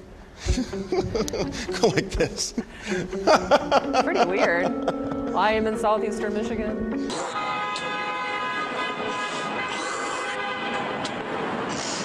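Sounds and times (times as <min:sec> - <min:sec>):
train screeching: 0:09.0 - 0:10.4.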